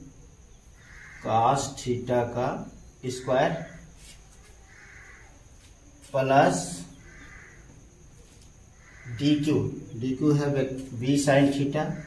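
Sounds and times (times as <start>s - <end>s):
faint steady high whine: 0.0s - 12.0s
faint distant call: 2.6s - 12.0s.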